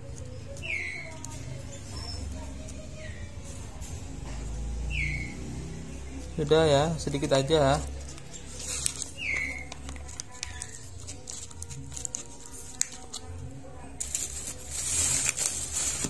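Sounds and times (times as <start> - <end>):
small bird chirping: 4.8 - 5.5
plastic packet rustling: 7.0 - 13.4, 14.0 - 16.0.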